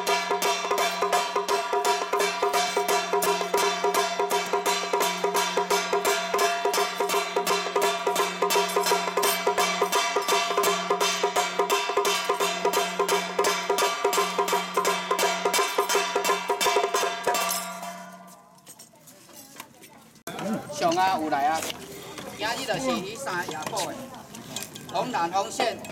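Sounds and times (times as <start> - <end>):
drum gong and cymbal beating: 0.0 - 18.4.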